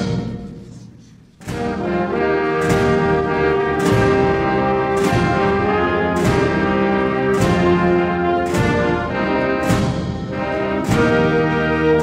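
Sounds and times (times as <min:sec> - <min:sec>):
brass band playing anthem: 0:01.4 - 0:12.0.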